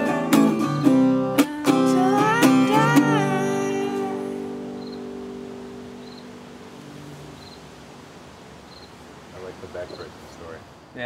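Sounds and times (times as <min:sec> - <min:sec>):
acoustic guitar chord ringing: 0:00.0 - 0:08.0
low background hiss: 0:00.0 - 0:11.0
faint high chirp: 0:04.8 - 0:05.1, 0:06.0 - 0:06.3, 0:07.3 - 0:07.7, 0:08.7 - 0:09.0.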